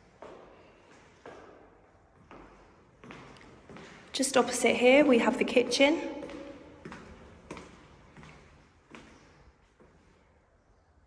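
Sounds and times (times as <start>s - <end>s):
footsteps on tiled floor: 6.2s - 10.3s.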